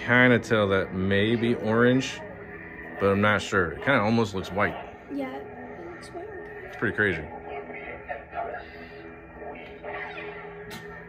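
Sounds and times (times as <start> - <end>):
steady electronic hum: 0.0 - 11.0.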